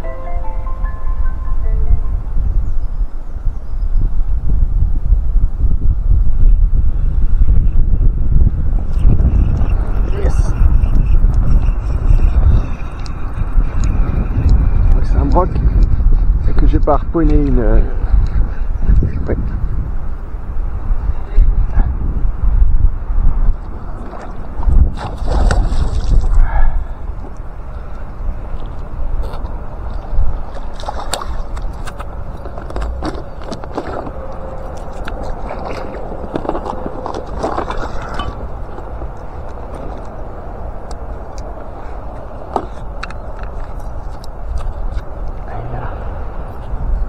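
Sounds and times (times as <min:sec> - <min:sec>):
water sloshing and gurgling: 0:23.6 - 0:26.4, 0:29.9 - 0:38.8.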